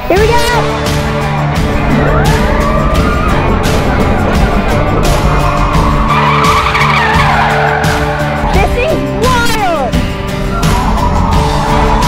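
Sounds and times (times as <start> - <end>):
background music with a beat: 0.0 - 12.0
tyres squealing: 1.0 - 9.2.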